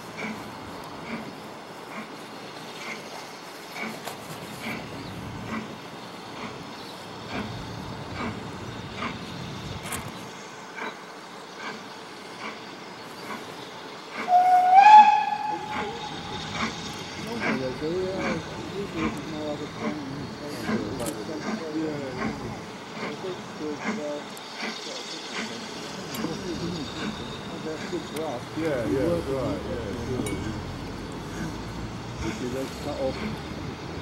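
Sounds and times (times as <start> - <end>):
steam locomotive exhaust beats: 0.0 - 34.0
steam whistle blast: 14.2 - 16.7.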